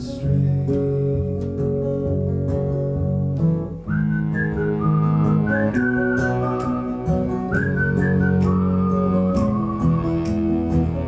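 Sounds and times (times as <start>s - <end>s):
sustained guitar chords: 0.0s - 11.0s
man whistling a melody: 3.8s - 11.0s.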